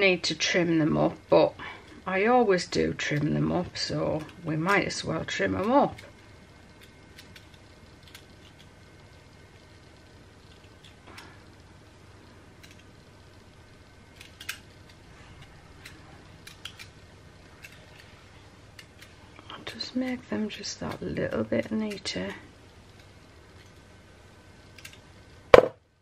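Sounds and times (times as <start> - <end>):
low room hiss: 0.0 - 26.0.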